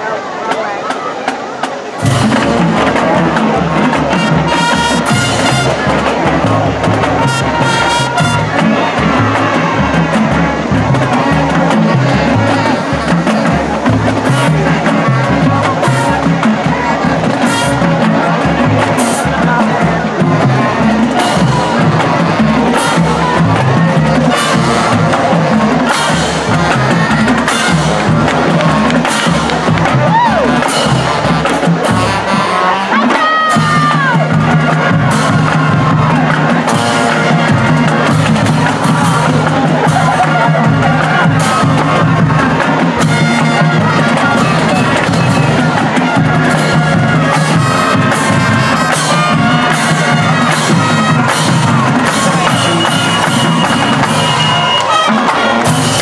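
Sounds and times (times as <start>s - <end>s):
marching band playing: 0.0s - 56.0s
drum hits: 0.5s - 56.0s.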